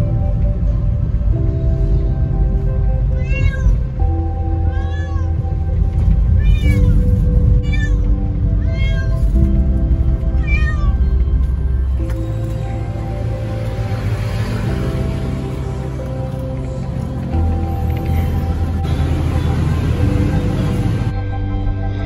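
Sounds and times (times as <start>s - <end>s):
background music with bass: 0.0s - 22.0s
kitten meowing: 3.2s - 3.8s, 4.7s - 5.4s, 6.4s - 9.2s, 10.4s - 11.0s.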